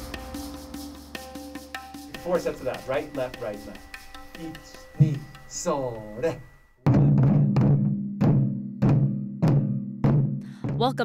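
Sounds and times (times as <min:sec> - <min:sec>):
taiko drums booming: 0:00.0 - 0:02.9, 0:06.9 - 0:11.0.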